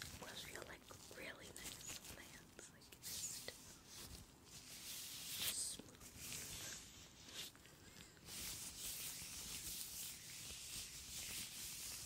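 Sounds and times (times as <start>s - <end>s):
latex gloves rubbing: 3.1s - 12.0s.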